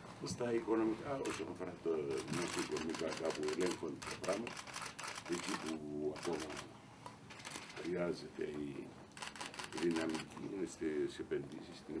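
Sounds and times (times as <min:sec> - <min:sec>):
man speaking: 0:00.2 - 0:04.5, 0:05.3 - 0:06.7, 0:09.8 - 0:12.0
camera shutters clicking rapidly: 0:02.1 - 0:06.7, 0:07.3 - 0:07.9, 0:09.1 - 0:10.3.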